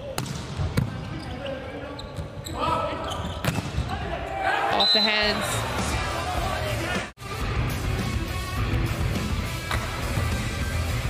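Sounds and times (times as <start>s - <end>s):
players' voices in a hall: 0.0s - 11.0s.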